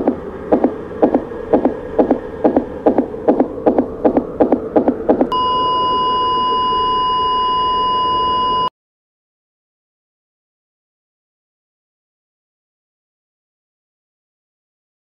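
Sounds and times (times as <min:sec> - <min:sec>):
fast pulsing beat: 0:00.0 - 0:05.3
long steady electronic beep: 0:04.8 - 0:08.7.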